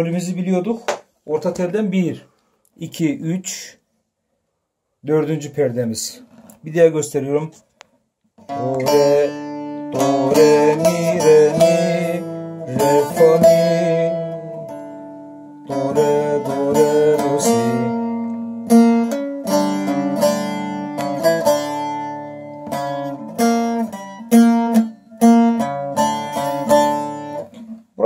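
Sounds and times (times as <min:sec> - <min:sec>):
plucked lute melody: 0:08.4 - 0:27.9.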